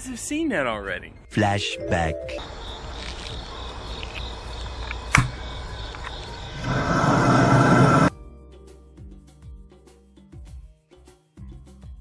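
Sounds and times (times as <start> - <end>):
sharp click: 4.9 - 5.4
propane torch hissing: 6.4 - 8.1
flame blast: 6.6 - 8.1.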